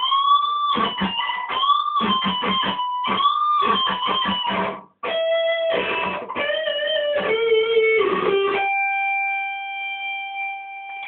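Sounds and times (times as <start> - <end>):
electric guitar note ringing: 0.0 - 11.0.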